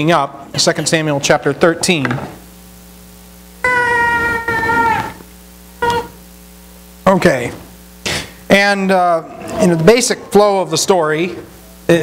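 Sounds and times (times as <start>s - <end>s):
baby crying: 3.6s - 5.2s, 5.8s - 6.2s.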